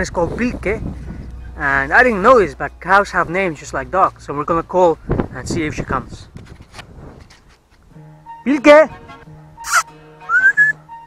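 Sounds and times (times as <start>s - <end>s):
background music: 1.2s - 4.9s, 7.9s - 11.0s
person whistling: 9.6s - 10.8s.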